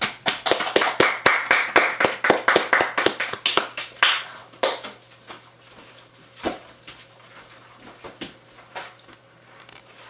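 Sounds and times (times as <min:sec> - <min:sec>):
people clapping: 0:00.0 - 0:05.0.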